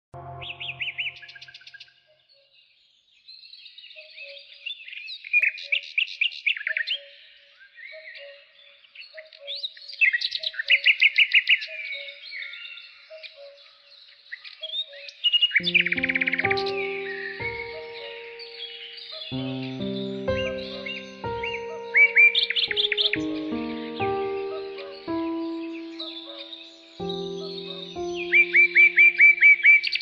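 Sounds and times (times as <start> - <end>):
brief low tone: 0.2 - 1.4
soft low two-note call: 0.2 - 1.4
birds chirping and trilling: 0.2 - 30.0.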